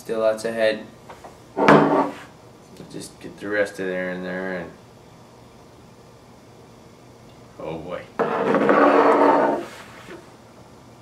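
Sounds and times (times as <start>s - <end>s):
chair scraping across floor: 1.6s - 2.3s, 8.2s - 10.2s.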